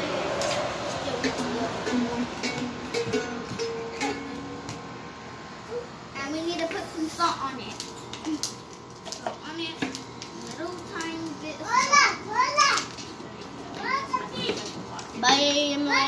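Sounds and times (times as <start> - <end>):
girls' voices playing: 5.6 - 16.0.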